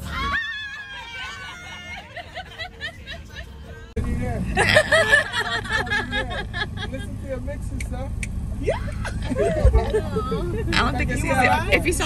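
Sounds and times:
women chattering and laughing: 0:00.0 - 0:07.4, 0:08.6 - 0:12.0
vehicle rumble: 0:00.0 - 0:12.0.

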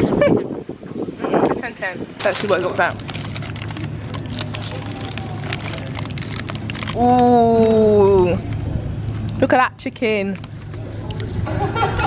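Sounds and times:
paper wrapper crinkling: 0:02.2 - 0:07.8, 0:09.0 - 0:11.5.

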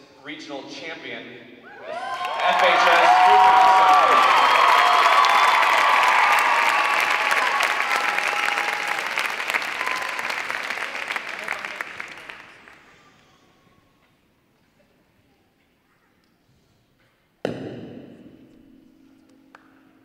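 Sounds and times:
audience applauding: 0:01.9 - 0:13.2.

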